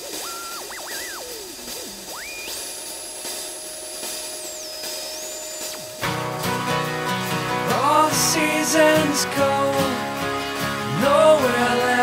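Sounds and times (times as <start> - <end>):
hiss: 0.0 - 6.0
synthesizer whistle sweeping: 0.0 - 7.3.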